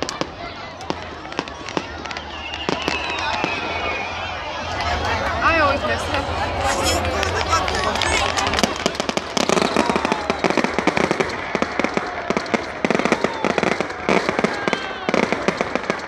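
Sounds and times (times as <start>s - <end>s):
fireworks crackling and popping: 0.0s - 5.0s, 5.9s - 16.0s.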